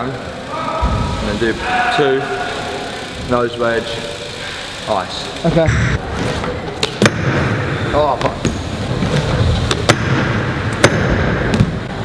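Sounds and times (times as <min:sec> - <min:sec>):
bike tyres rolling on concrete: 0:00.0 - 0:12.0.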